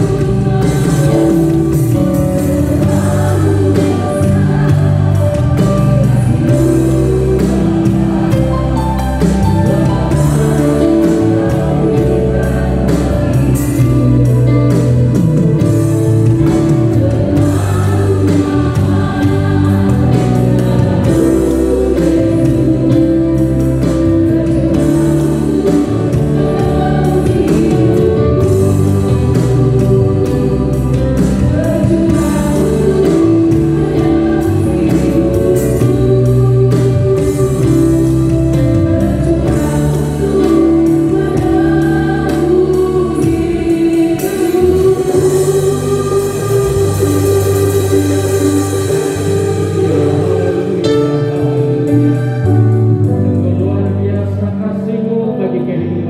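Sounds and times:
drum kit hits: 0.0 - 54.4
voices singing: 0.0 - 55.8
bass guitar: 0.0 - 56.0
keyboards: 0.0 - 56.0.

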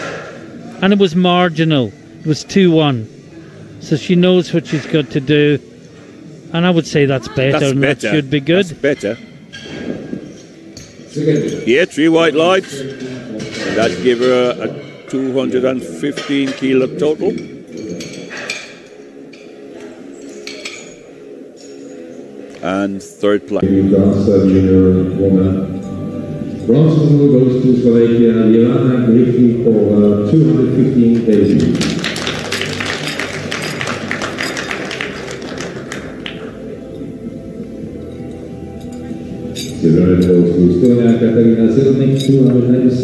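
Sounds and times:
audience applauding: 31.1 - 36.5.

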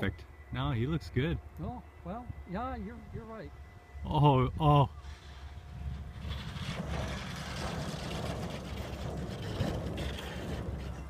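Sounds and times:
wind on microphone: 2.2 - 11.0
glider wheel rumbling on grass: 5.0 - 11.0.

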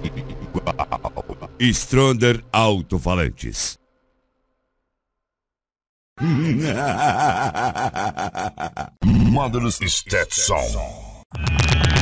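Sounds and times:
electronically processed laugh: 0.0 - 1.7, 6.2 - 9.2.

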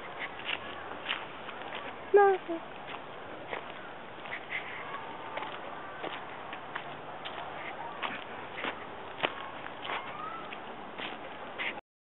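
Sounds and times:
faint outdoor hiss: 0.0 - 11.8
footsteps on dry leaves: 0.0 - 11.8.

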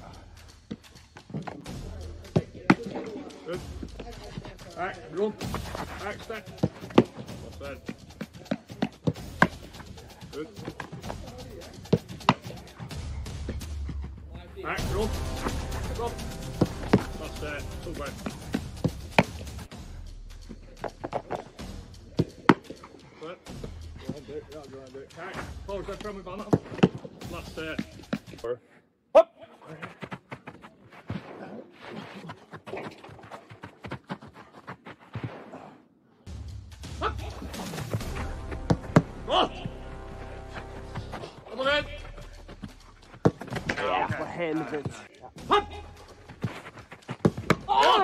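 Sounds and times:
quick steps on artificial turf: 29.4 - 35.8, 37.5 - 48.0
man shouting: 37.0 - 37.4, 39.3 - 39.7, 45.4 - 45.9, 47.6 - 48.0
football thuds: 42.0 - 45.0, 46.3 - 47.8.

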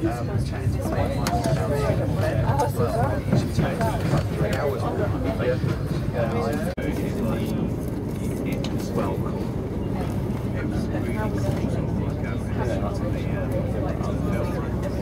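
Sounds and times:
people talking: 0.0 - 15.0
train rumbling: 0.0 - 15.0.

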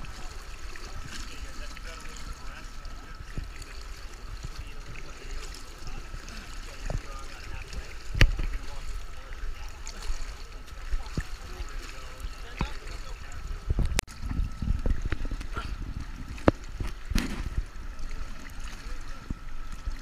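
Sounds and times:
pool water lapping and splashing: 0.0 - 20.0.

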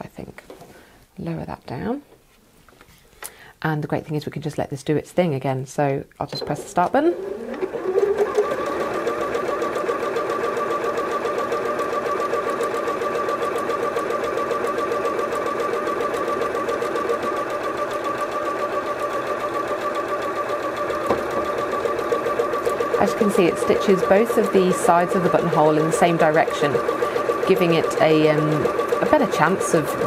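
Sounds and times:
sewing machine whining: 6.3 - 30.0.

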